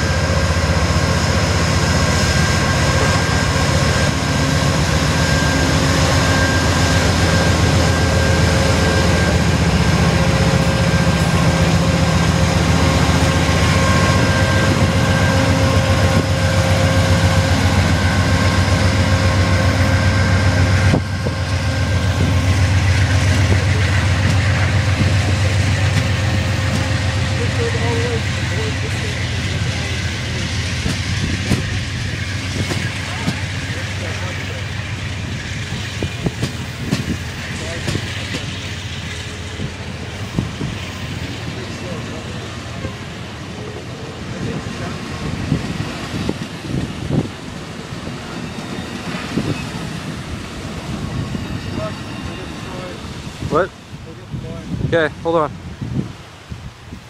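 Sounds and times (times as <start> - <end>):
locomotive engine drone: 0.0 - 54.6
whining tones: 1.8 - 42.2.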